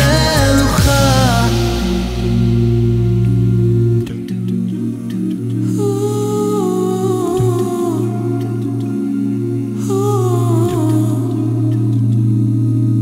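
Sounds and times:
male vocal group singing: 0.0s - 2.6s.

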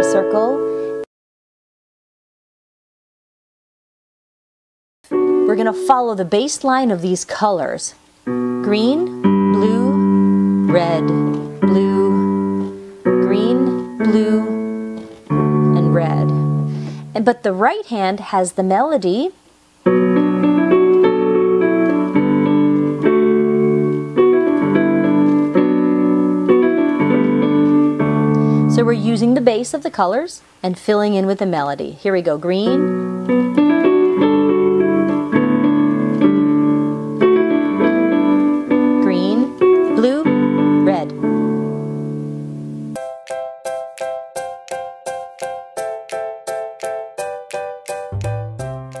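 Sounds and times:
digital piano chords: 0.0s - 1.1s, 5.0s - 7.0s, 8.2s - 17.4s, 19.8s - 29.8s, 32.5s - 49.0s.

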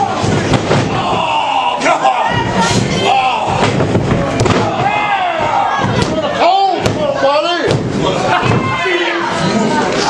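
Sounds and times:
people shouting: 0.0s - 9.8s.

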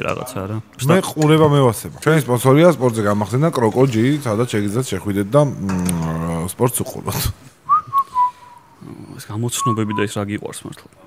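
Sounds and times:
person whistling: 7.7s - 8.7s, 9.6s - 10.0s.

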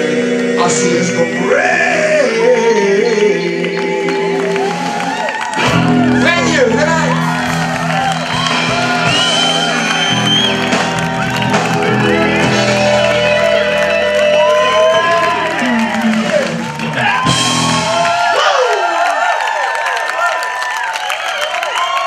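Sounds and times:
blues band holding chord: 0.0s - 18.2s
crowd cheering and whooping: 1.5s - 22.0s.

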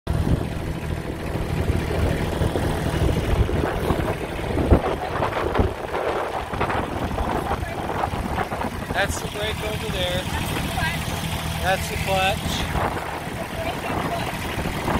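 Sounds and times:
diesel engine idling: 0.1s - 14.9s.

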